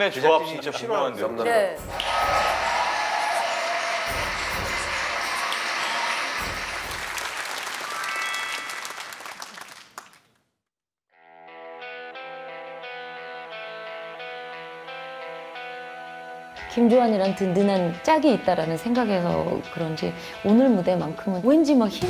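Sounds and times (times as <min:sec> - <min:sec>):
studio audience applauding: 0:01.9 - 0:10.3
soft instrumental song: 0:11.3 - 0:21.9.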